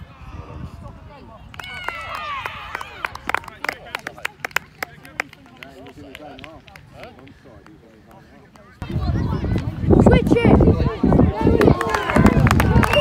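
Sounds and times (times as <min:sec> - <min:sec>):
voices chatting: 0:02.7 - 0:13.0.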